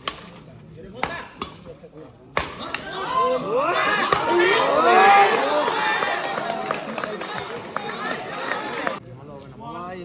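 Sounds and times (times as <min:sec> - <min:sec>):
racket hitting shuttlecock: 0:00.0 - 0:00.4.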